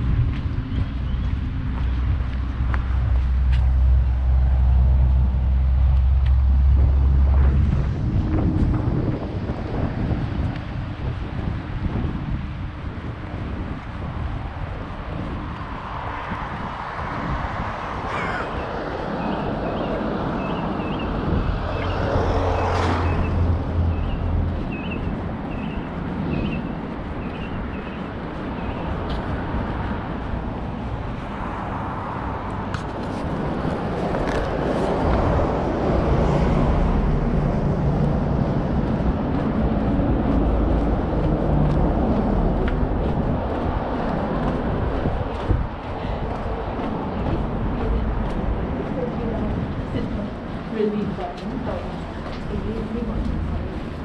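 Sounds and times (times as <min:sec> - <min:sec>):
footsteps on a path: 0:00.0 - 0:54.0
road traffic passing: 0:00.0 - 0:54.0
heavy vehicle rumbling past: 0:17.4 - 0:25.4, 0:29.4 - 0:54.0.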